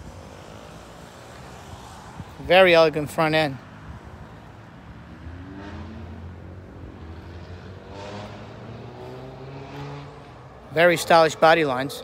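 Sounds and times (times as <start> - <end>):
vehicle engine accelerating: 5.0 - 10.6.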